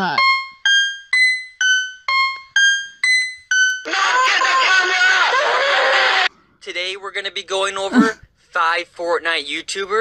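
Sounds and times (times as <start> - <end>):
high-pitched keyboard melody: 0.0 - 5.2.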